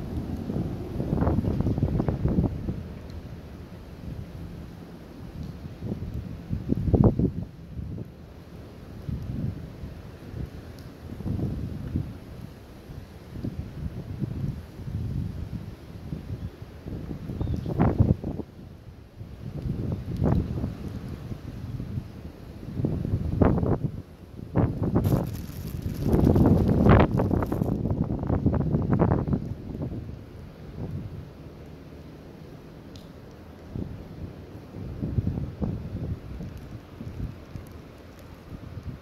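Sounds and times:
wind buffeting microphone: 0.0 - 4.5, 5.2 - 8.2, 9.0 - 18.6, 19.2 - 31.3, 33.7 - 37.8
close rustling of hands: 25.0 - 27.9.

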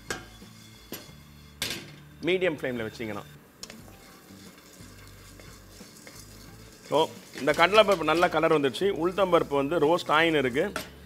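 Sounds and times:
spatula scraping lentils in wok: 0.0 - 1.7, 2.6 - 11.0.

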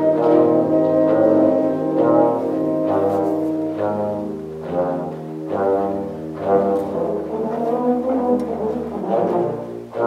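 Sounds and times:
low brass ensemble chords: 0.0 - 10.0.

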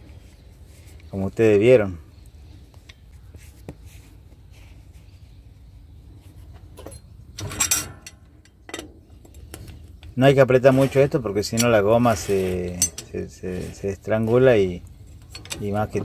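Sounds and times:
cloth rag rustling on metal: 10.4 - 14.7.

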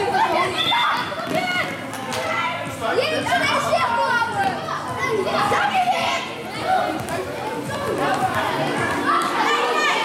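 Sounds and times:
children shouting in a hall: 0.0 - 2.6, 8.4 - 10.0.

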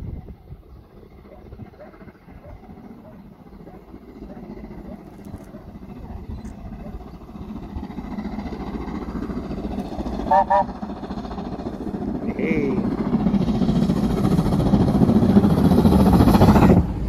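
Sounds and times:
steam locomotive rumble: 0.0 - 17.0
steam whistle toots: 10.2 - 10.8.

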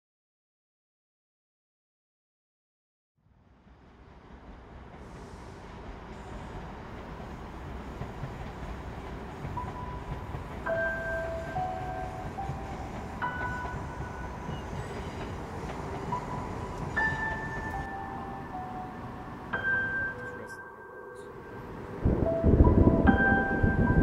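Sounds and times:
train rumbling past: 3.3 - 24.0
bell-like ambient music: 9.6 - 24.0.

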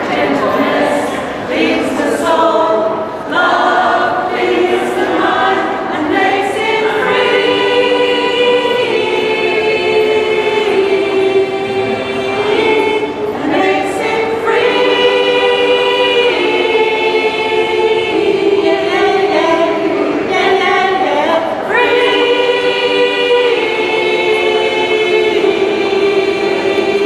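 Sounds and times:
choir singing sustained chords: 0.0 - 27.0.

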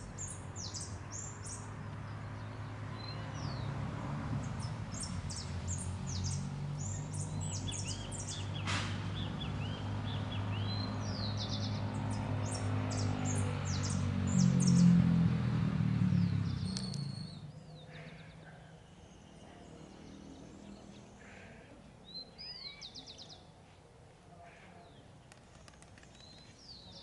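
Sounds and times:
songbirds chirping and trilling: 0.0 - 27.0
sharp click: 16.7 - 17.1.

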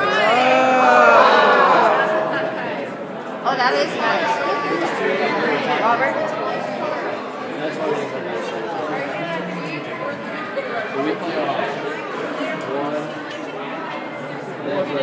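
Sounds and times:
indistinct chatter: 0.0 - 15.0.

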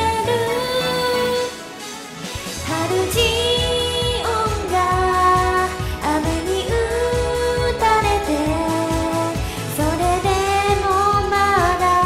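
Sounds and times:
karaoke backing track with drums: 0.0 - 12.0
woman singing pop song: 0.0 - 12.0.

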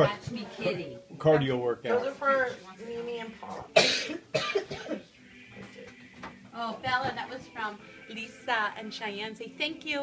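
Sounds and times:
person coughing: 3.8 - 5.0.

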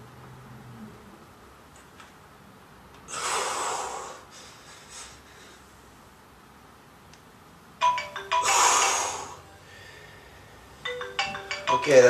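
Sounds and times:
loud breathy exhale: 3.1 - 5.6
timer alarm ringtone melody: 7.8 - 9.7, 10.8 - 12.0.

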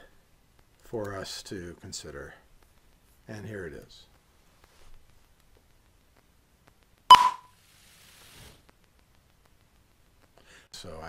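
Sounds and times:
sharp click: 7.1 - 7.5
short high sync beep: 7.1 - 7.5.

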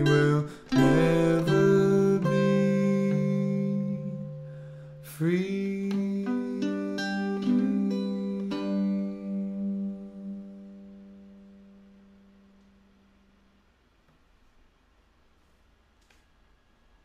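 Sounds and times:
guitar notes and chord: 0.0 - 12.8.

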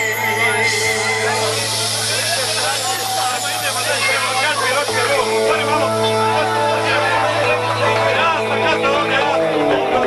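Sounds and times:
crowd talking and calling: 0.0 - 10.0.

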